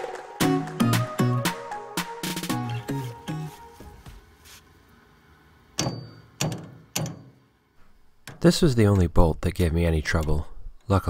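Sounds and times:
background music: 0.0 - 4.3
hammer clanking on metal bolt: 5.8 - 7.5, 8.2 - 9.1.

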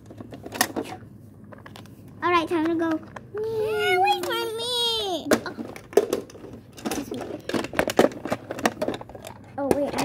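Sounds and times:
plastic toys clicking and knocking: 0.0 - 10.0.

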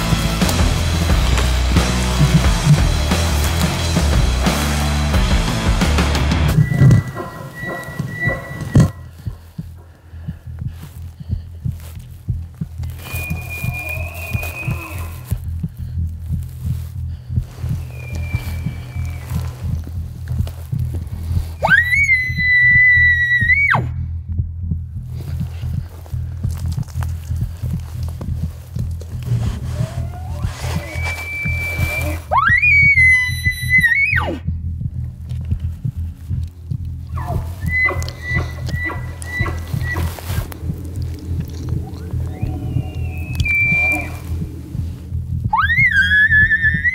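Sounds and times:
elk bugling: 0.0 - 23.9, 25.2 - 34.5, 35.2 - 46.9
low music bed: 0.0 - 46.9
distant elk bugles: 6.4 - 10.3, 12.8 - 15.4, 17.4 - 23.8, 29.3 - 34.4, 37.1 - 46.9.

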